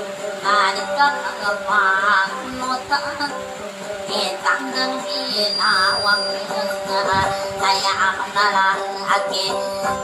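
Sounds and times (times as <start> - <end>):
instrumental accompaniment: 0.0 - 10.0
person singing: 0.0 - 10.0.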